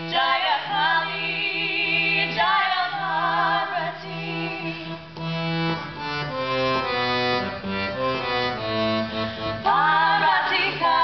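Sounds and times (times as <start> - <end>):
women singing together: 0.0 - 4.8, 9.6 - 11.0
harmonium drone: 4.1 - 10.4.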